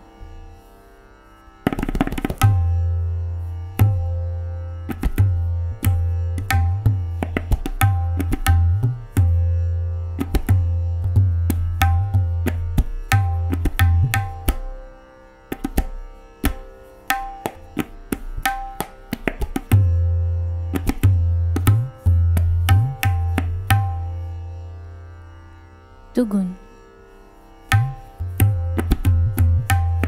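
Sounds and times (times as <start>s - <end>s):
tabla playing: 1.7s - 14.9s, 15.5s - 24.4s, 27.7s - 30.0s.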